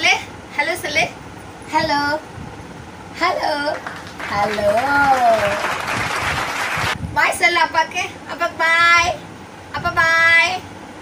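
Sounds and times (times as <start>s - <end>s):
clapping noise: 3.7s - 7.0s.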